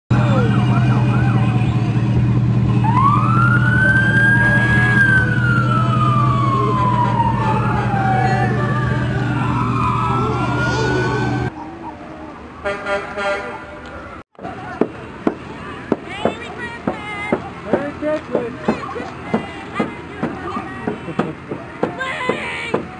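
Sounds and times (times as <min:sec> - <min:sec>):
emergency sirens wailing: 0:00.1 - 0:14.2
vehicle engines droning: 0:00.1 - 0:22.9.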